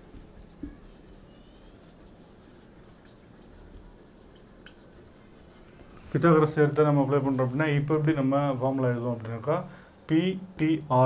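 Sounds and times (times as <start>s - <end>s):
marker scratching on whiteboard: 0.0s - 6.4s.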